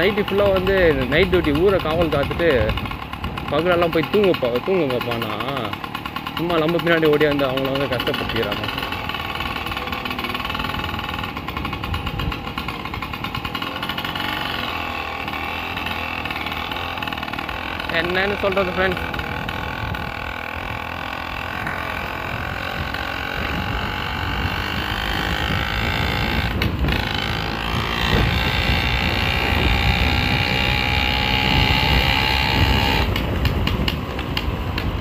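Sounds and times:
small engine running: 0.0 - 35.0.

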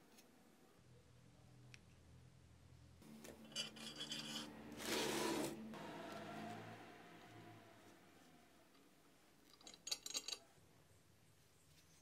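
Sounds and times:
steel parts rubbing and scraping: 3.4 - 5.6.

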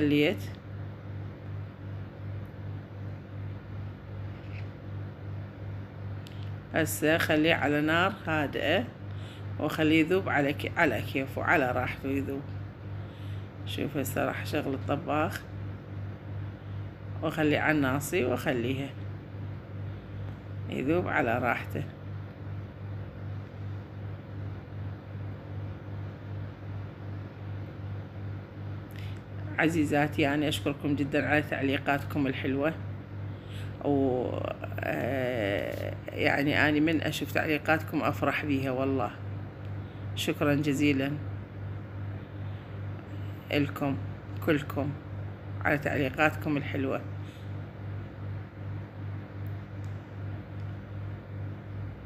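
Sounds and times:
throbbing mechanical hum: 0.0 - 52.0.

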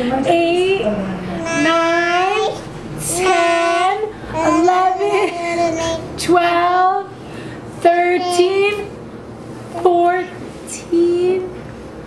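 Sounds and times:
high sing-song voice: 1.3 - 6.4.

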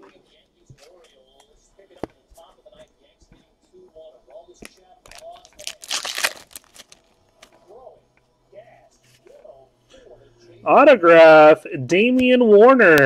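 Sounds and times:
crinkles and handling noises: 0.0 - 7.8
wrapper being torn open: 5.1 - 7.1.

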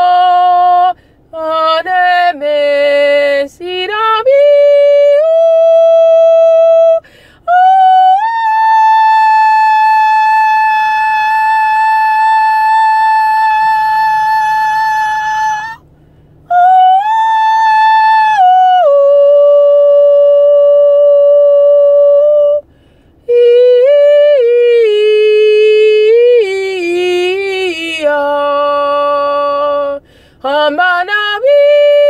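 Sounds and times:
woman singing wordless high notes: 0.0 - 15.9, 16.5 - 22.7, 23.3 - 32.0.

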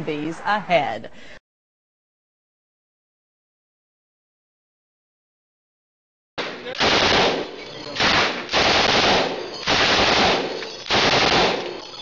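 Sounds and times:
machine gun bursts echoing indoors: 6.6 - 12.0.

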